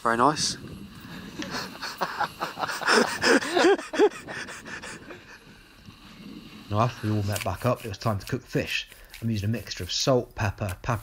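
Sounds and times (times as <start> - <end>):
person laughing: 1.4 - 5.4.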